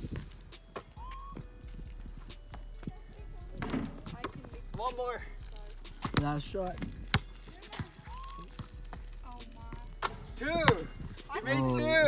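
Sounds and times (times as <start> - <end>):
basketball bouncing on concrete: 0.0 - 11.1.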